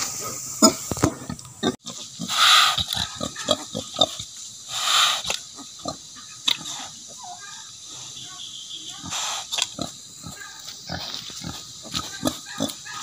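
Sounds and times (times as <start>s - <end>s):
pigs grunting: 0.2s - 7.2s, 9.0s - 13.0s.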